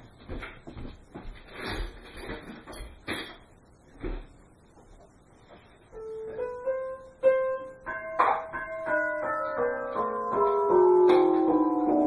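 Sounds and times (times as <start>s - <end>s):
piano playing: 5.9s - 12.0s.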